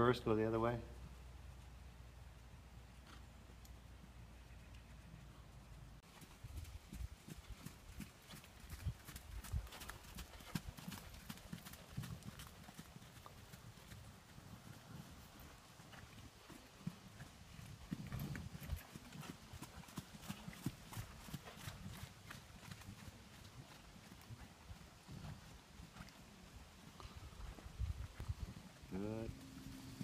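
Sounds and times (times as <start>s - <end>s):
horse hoofbeats on sand: 6.0s - 26.3s.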